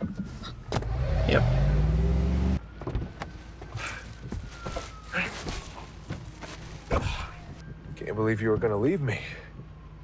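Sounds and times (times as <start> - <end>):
car engine humming: 0.3 - 4.4.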